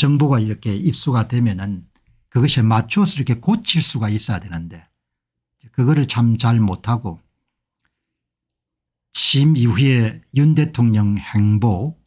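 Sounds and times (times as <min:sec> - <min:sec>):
man speaking: 0:00.0 - 0:04.9, 0:05.6 - 0:07.3, 0:09.1 - 0:12.0.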